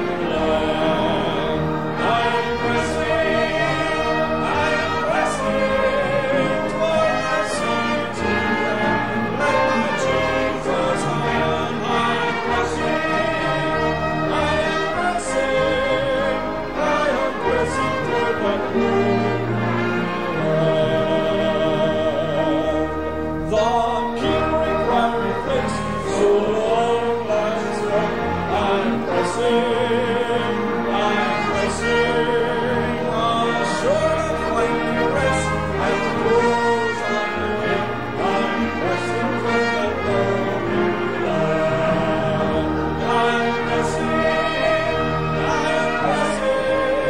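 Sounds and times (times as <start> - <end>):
instrumental accompaniment: 0.0 - 47.0
small orchestra playing a hymn: 0.0 - 47.0
trombone: 0.0 - 47.0.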